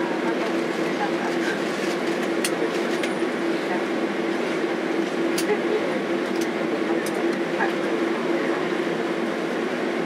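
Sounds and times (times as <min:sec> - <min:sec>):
jet engines idling hum: 0:00.0 - 0:10.0.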